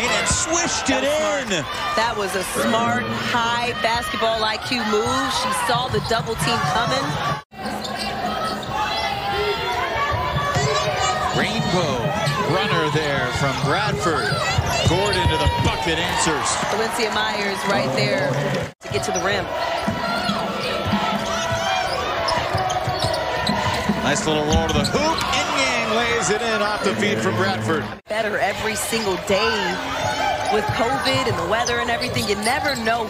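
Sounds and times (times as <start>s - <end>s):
voices in an arena: 0.0s - 33.0s.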